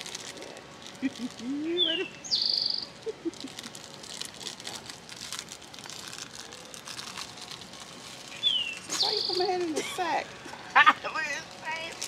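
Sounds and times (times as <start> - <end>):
songbird whistle and trill: 1.8 - 2.9, 8.3 - 9.5.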